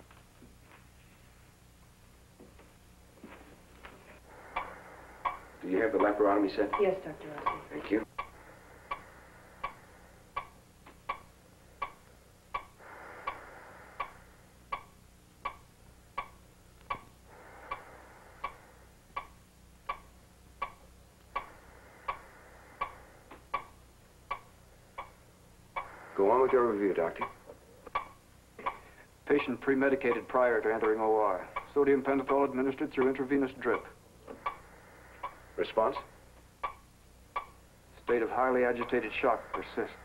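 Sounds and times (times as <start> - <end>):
faint low hum: 0.0 - 40.0
heart monitor clicking: 3.8 - 28.9, 30.0 - 37.7
man speaking: 5.6 - 6.8, 26.2 - 27.4, 29.3 - 34.0, 35.6 - 36.1, 38.0 - 40.0.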